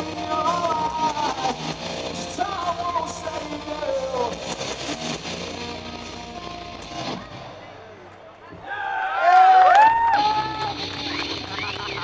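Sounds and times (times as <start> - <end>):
live rock band: 0.0 - 7.7.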